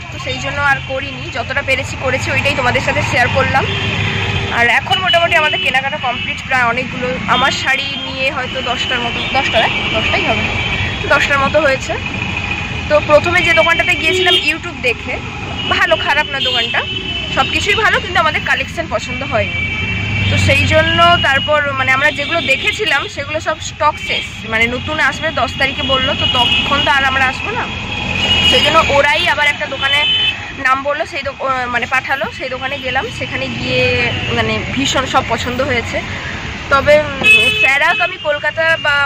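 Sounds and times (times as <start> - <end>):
woman speaking: 0.0 - 3.7, 4.5 - 12.0, 12.9 - 19.6, 20.3 - 27.7, 28.5 - 36.1, 36.7 - 39.0
woman talking: 0.0 - 3.8, 4.5 - 12.1, 12.9 - 19.6, 20.3 - 27.7, 28.5 - 39.0
road traffic: 0.0 - 39.0.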